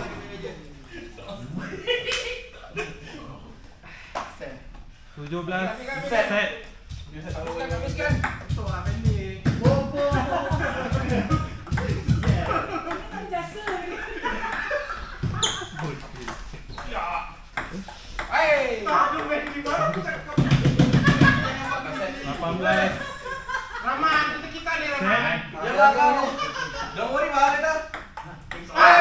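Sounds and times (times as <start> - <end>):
table tennis ball tapping: 7.3 - 13.9, 17.6 - 23.0, 27.5 - 28.8.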